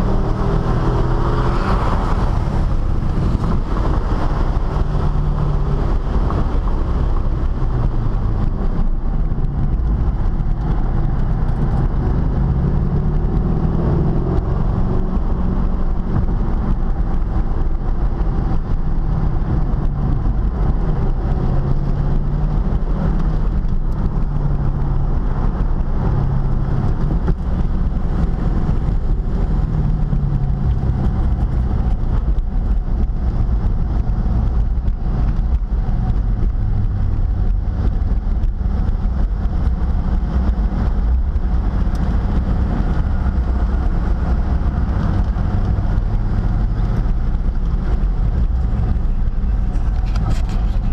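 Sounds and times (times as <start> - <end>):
car engine running: 0.0 - 50.9
road and wind noise: 0.0 - 50.9.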